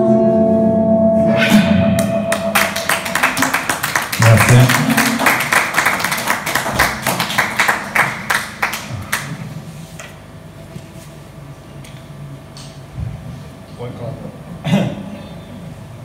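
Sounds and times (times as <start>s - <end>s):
audience clapping: 2.0s - 9.6s.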